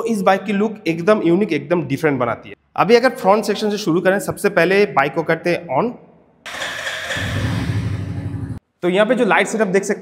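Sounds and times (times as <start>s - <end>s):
electric starter whir: 6.5s - 8.6s
motorcycle engine running: 6.5s - 8.6s.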